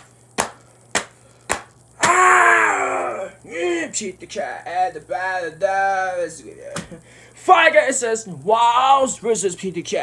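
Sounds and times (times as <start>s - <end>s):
man wailing: 2.0s - 3.9s.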